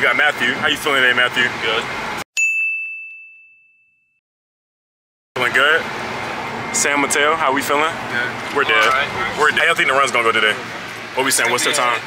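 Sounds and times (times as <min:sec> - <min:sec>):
bell-like ding: 0:02.4 - 0:04.2.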